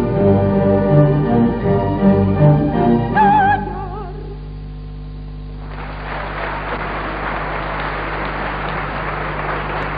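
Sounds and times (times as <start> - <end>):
orchestra chord: 0.0 - 4.1
low electrical hum: 0.0 - 9.9
audience applauding: 5.6 - 9.9.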